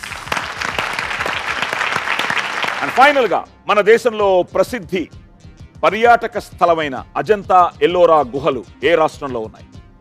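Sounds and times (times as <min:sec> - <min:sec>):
audience applause: 0:00.0 - 0:03.3.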